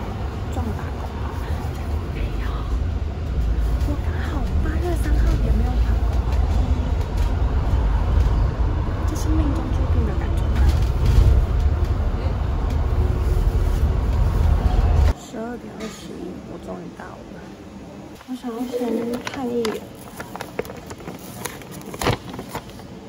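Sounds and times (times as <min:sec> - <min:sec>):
bus engine and road rumble: 0:00.0 - 0:17.2.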